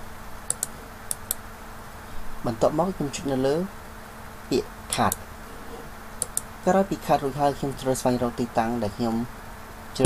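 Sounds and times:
computer mouse clicking: 0:00.5 - 0:01.4, 0:06.2 - 0:06.5.

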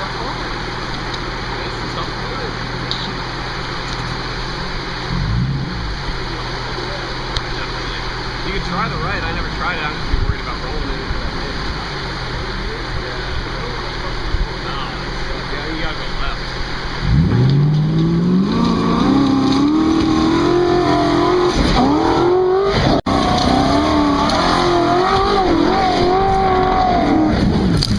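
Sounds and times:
suv engine idling and revving: 0:00.0 - 0:27.9.

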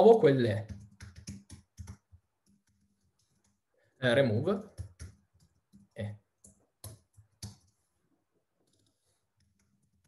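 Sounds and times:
faint keyboard clicks: 0:08.6 - 0:10.0.

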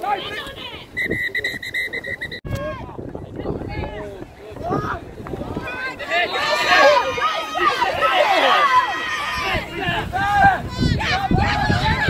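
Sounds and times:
players shouting: 0:00.0 - 0:03.0, 0:03.6 - 0:12.0
referee's whistle trilling: 0:00.9 - 0:02.5.

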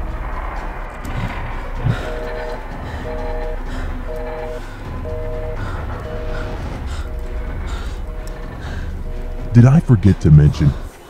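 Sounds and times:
low droning music: 0:00.0 - 0:11.0
telephone busy signal beeps: 0:01.8 - 0:10.8.

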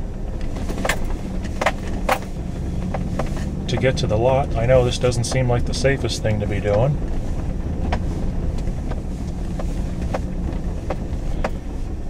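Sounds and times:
truck engine running: 0:00.0 - 0:12.0
knocks and rattles: 0:00.5 - 0:04.1.

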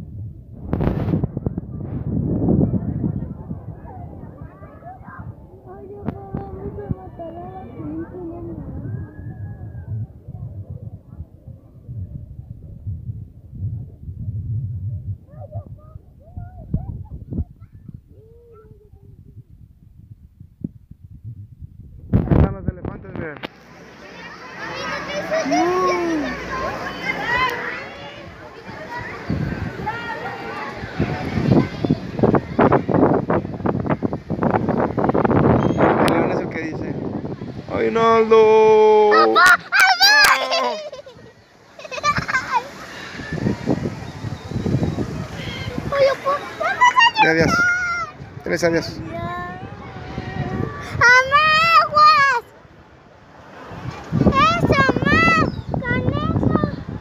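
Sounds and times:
low rumble: 0:08.0 - 0:23.1
children's high-pitched calls: 0:15.3 - 0:19.4, 0:24.0 - 0:36.1, 0:39.0 - 0:48.4, 0:49.0 - 0:53.0, 0:53.6 - 0:57.0
loud burst of voices: 0:23.7 - 0:57.0
child crying: 0:39.1 - 0:41.1.

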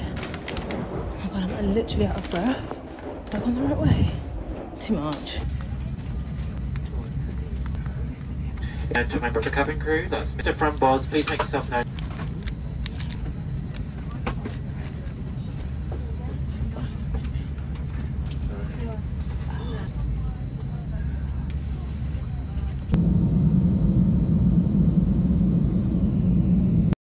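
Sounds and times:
airliner cabin rumble: 0:00.0 - 0:27.0
deep jet engine rumble: 0:00.0 - 0:27.0.

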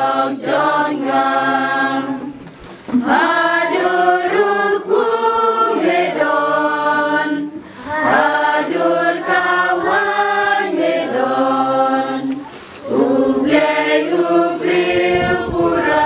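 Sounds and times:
children singing together: 0:00.0 - 0:16.0.

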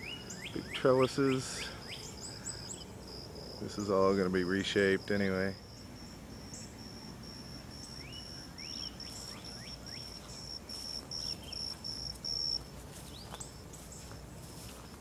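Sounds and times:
insect chirping: 0:00.0 - 0:15.0.

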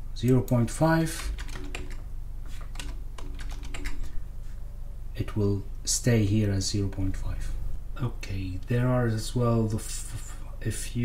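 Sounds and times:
faint steady hum: 0:00.0 - 0:11.0
computer keyboard clicks: 0:01.2 - 0:02.0, 0:02.7 - 0:04.1.

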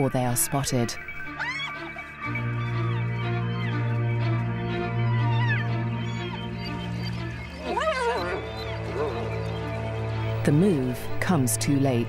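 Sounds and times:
background music with drone: 0:00.0 - 0:12.0
hyena call: 0:07.6 - 0:09.4.

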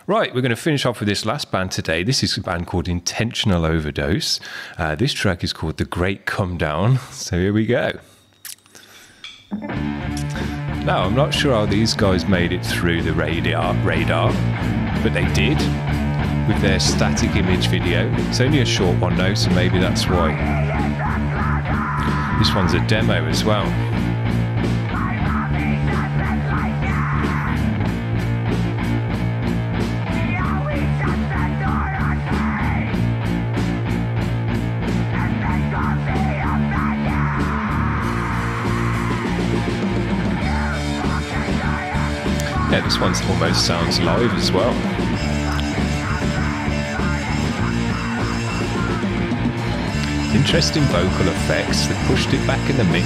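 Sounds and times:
punk rock band playing: 0:09.5 - 0:53.0.

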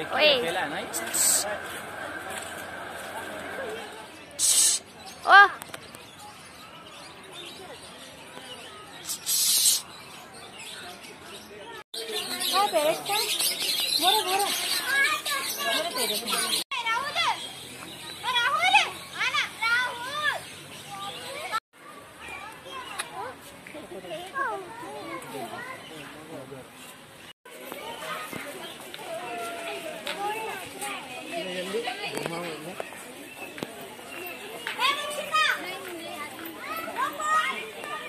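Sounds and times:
children calling out excitedly: 0:12.1 - 0:23.4, 0:34.3 - 0:38.0.

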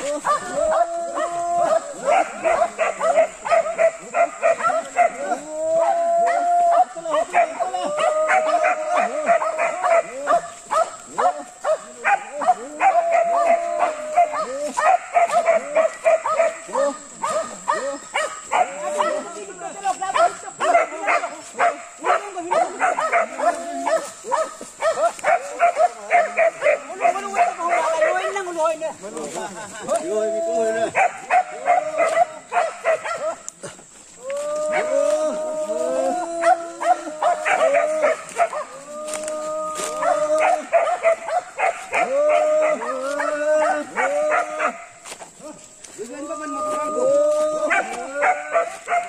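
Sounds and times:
dogs barking: 0:00.0 - 0:19.3, 0:20.1 - 0:28.6, 0:30.8 - 0:33.6, 0:36.4 - 0:38.8, 0:39.8 - 0:45.0, 0:47.6 - 0:49.0
people calling: 0:00.0 - 0:49.0.

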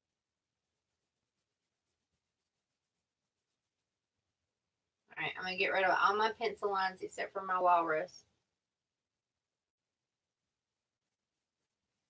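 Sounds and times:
eraser rubbing on paper: 0:00.6 - 0:04.0, 0:10.2 - 0:12.0.

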